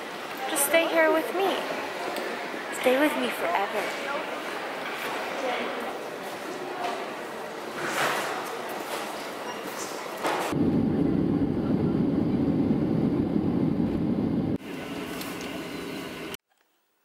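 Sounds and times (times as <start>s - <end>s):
airport terminal ambience: 0.0s - 16.4s
airliner cabin rumble: 10.5s - 14.6s
jet taxiing cabin noise: 10.5s - 16.4s.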